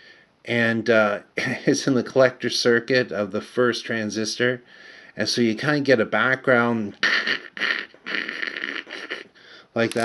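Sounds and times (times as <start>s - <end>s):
man imitating hissing noise: 6.9s - 9.7s.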